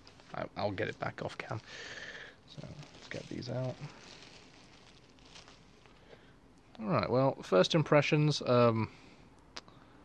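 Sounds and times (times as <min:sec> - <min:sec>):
plastic bag rustling: 0:00.0 - 0:06.4.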